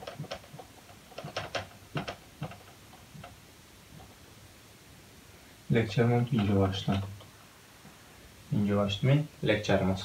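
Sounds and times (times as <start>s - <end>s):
marker tapping on whiteboard: 0.0s - 3.4s.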